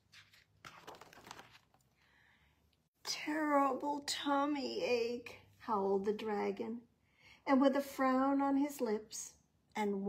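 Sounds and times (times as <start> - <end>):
paper page rustling: 0.0 - 2.0.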